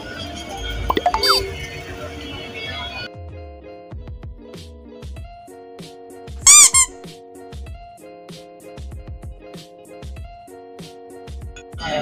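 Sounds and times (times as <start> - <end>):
high-pitched squeaks: 6.5 - 7.0
background music with beat: 7.4 - 11.8.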